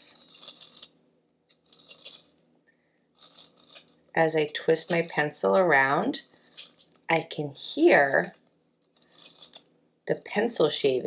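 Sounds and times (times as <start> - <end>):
pencil sharpener shaving wood: 0.0 - 0.9, 1.5 - 2.4, 3.1 - 4.0, 4.6 - 5.4, 6.0 - 6.9, 7.8 - 11.0.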